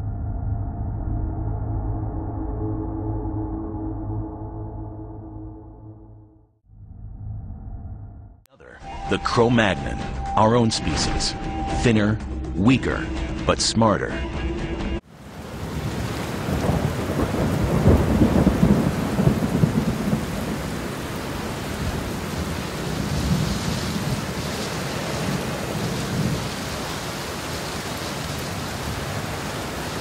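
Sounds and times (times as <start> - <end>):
rain rushing: 15.1 - 30.0
thunder rumbling: 15.2 - 30.0.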